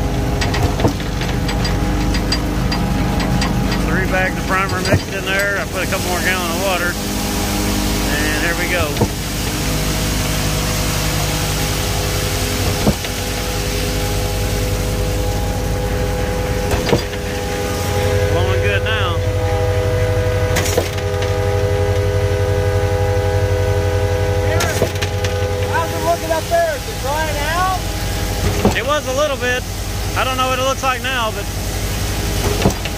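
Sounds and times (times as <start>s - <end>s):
pump truck engine and hydraulic hum: 0.0s - 32.9s
sharp pump knock: 8.9s - 9.2s.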